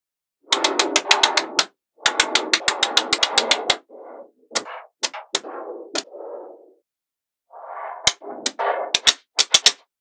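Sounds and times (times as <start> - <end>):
magnetic balls clicking: 0.5 - 3.9, 4.5 - 6.1, 8.0 - 9.9.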